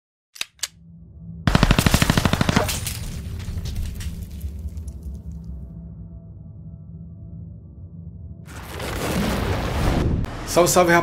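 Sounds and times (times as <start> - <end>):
machine gun burst: 1.5 - 3.0.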